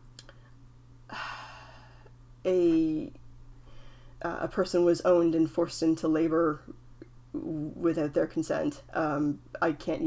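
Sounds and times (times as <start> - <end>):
woman sighing: 1.1 - 2.1.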